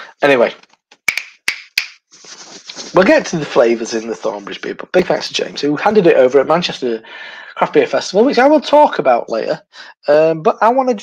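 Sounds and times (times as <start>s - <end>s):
finger snapping: 1.1s - 2.0s.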